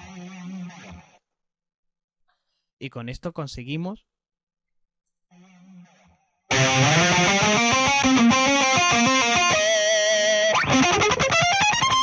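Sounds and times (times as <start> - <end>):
distorted electric guitar note: 6.5 - 12.0.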